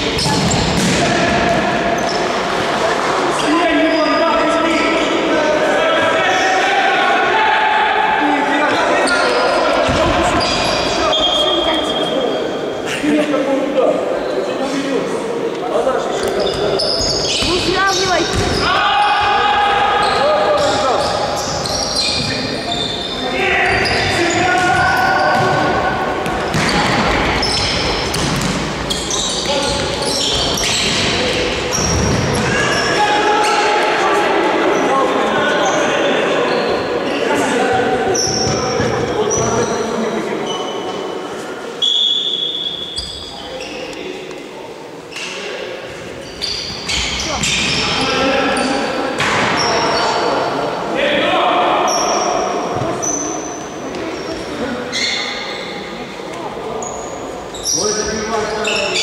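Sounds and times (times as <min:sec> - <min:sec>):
sneakers squeaking: 0:00.0 - 0:02.7, 0:03.3 - 0:04.8, 0:08.7 - 0:12.8, 0:16.1 - 0:33.8, 0:35.5 - 0:41.2, 0:41.8 - 0:44.2, 0:45.1 - 0:50.4, 0:51.9 - 0:59.0
echoing sports hall din: 0:00.0 - 0:59.0
players shouting: 0:05.2 - 0:11.9, 0:16.4 - 0:39.1
ball kicked and bouncing: 0:18.3 - 0:18.6, 0:28.1 - 0:28.7
referee's whistle blast: 0:41.8 - 0:43.2.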